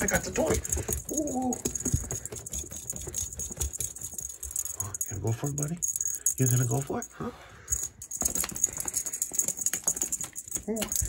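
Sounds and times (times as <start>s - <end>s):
cat toy rattling and jingling: 0.0s - 11.0s.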